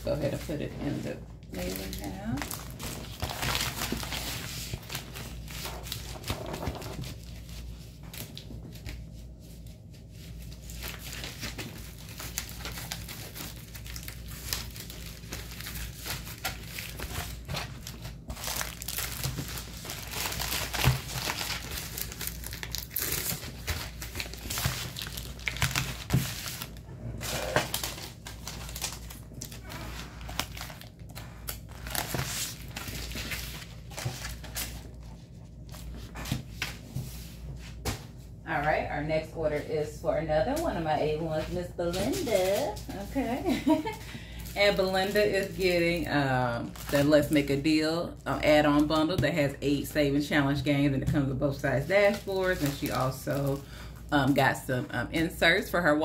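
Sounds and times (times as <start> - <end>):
plastic mailer crinkling: 0.1 - 9.0, 10.3 - 36.7, 41.9 - 47.6, 51.4 - 54.1.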